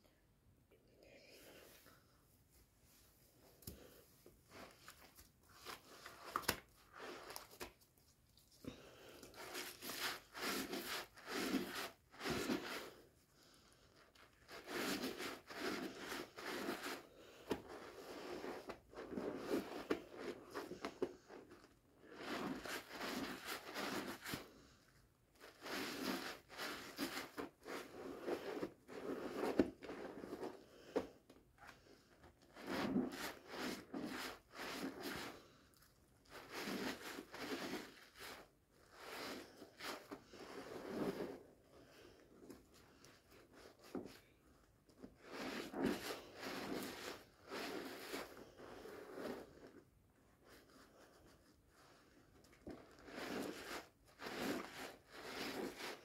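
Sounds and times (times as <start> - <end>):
sponge squishing in soap lather: 4.5 - 13.0, 14.2 - 24.7, 25.4 - 41.4, 45.0 - 49.8, 51.8 - 56.0.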